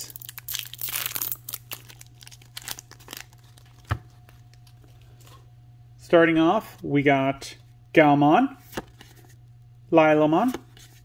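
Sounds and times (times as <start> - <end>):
foil wrapper crinkling: 0.0 - 4.9.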